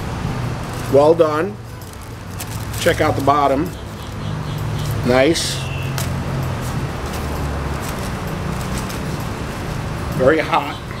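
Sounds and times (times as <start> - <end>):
low traffic rumble: 0.0 - 11.0.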